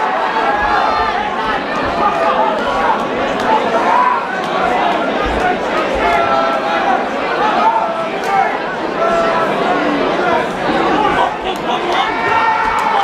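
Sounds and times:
crowd shouting and talking: 0:00.0 - 0:13.0.

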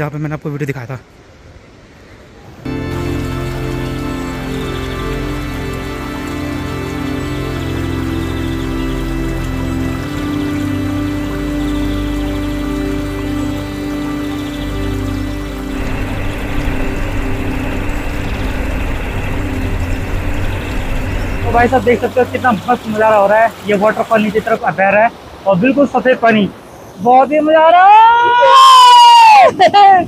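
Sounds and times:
music with long held tones: 0:02.7 - 0:24.6
waterfall rushing over boulders: 0:02.7 - 0:30.0.

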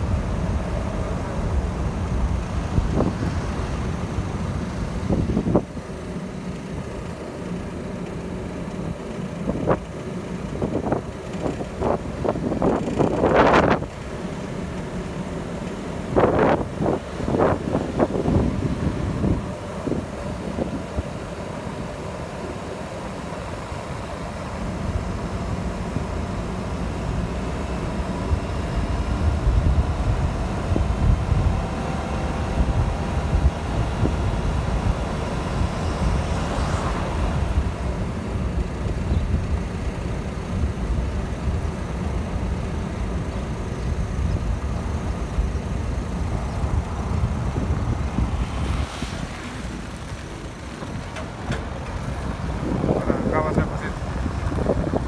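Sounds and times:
car engine and road rumble: 0:00.0 - 0:55.0.

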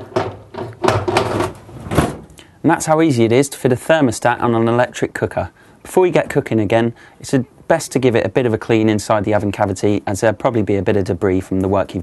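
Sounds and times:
oven door hinge clicks and clunks: 0:00.0 - 0:02.2
sharp knocks: 0:00.0 - 0:02.3.

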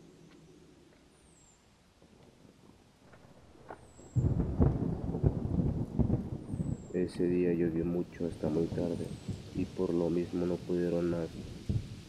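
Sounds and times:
thunder rumbling and cracking: 0:03.0 - 0:12.0.

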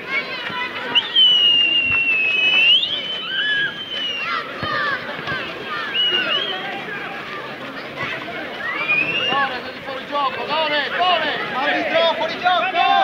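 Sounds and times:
shouting voices: 0:00.0 - 0:13.0
long high whistle: 0:01.0 - 0:04.2.

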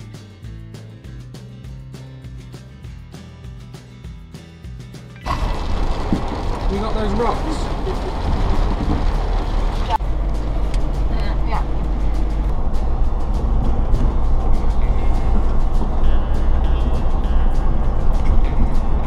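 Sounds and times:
car engine and tyres rumbling: 0:05.0 - 0:19.0.

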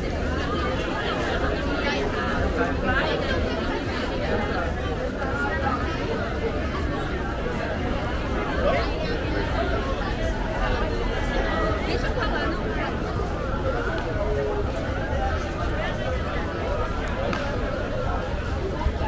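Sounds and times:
chatter of many people: 0:00.0 - 0:19.0.

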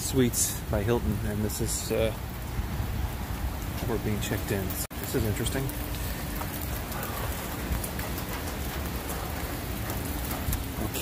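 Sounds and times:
rain on concrete pavement: 0:00.0 - 0:11.0.

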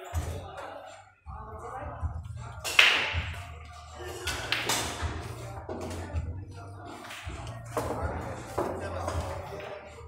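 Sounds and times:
pool cue striking ball: 0:02.7 - 0:03.4, 0:04.3 - 0:05.2
pool balls knocking together: 0:04.3 - 0:05.2.

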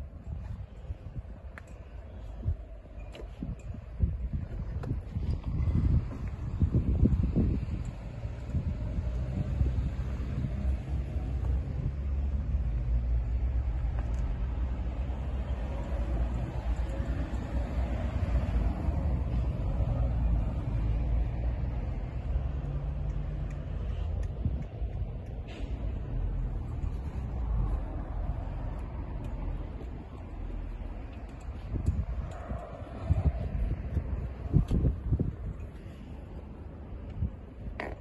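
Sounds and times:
steady low rumble: 0:00.0 - 0:38.0.

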